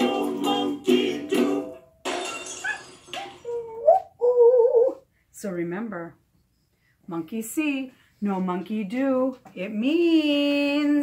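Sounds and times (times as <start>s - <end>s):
woman's voice: 3.5s - 6.2s, 7.1s - 11.0s.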